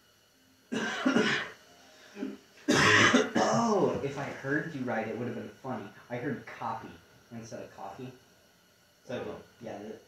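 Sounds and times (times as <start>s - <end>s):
man coughing and clearing throat: 0.7s - 1.6s, 2.2s - 4.0s.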